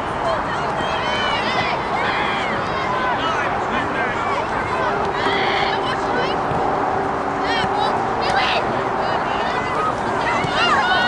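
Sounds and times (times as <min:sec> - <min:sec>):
people shouting: 0:00.2 - 0:06.5, 0:07.4 - 0:11.0.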